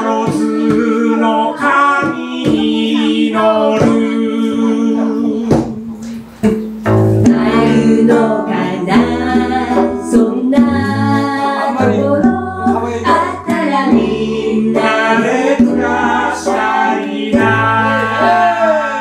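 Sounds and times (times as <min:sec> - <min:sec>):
acoustic band playing with singing: 0:00.0 - 0:19.0
deep bass notes: 0:00.0 - 0:19.0.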